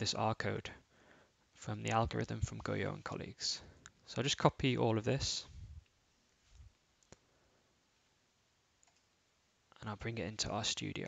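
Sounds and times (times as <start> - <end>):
computer click: 8.8 - 9.1.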